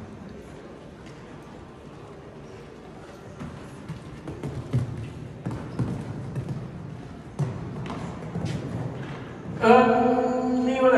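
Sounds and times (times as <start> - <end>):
horse hoofbeats on sand: 3.4 - 9.3.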